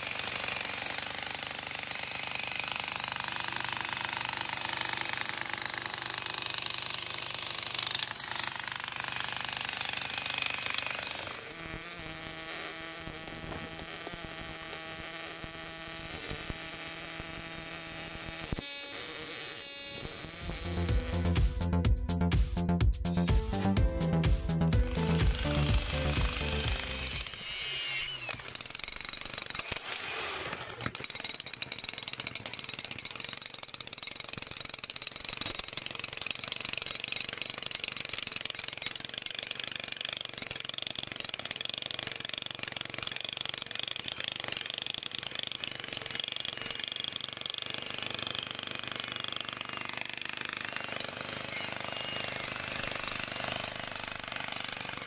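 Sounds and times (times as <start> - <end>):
music: 20.5 - 27.2
demolition breaker hammering concrete: 24.8 - 27.4, 30.8 - 55.0.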